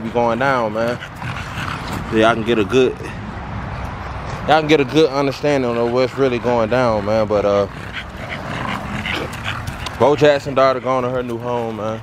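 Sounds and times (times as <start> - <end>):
dog panting: 0.0 - 3.1, 4.8 - 12.0.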